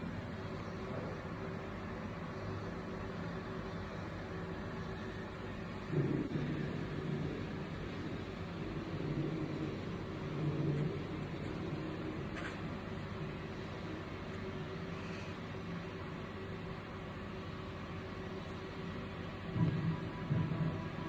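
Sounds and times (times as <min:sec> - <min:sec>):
low droning hum: 0:00.0 - 0:21.0.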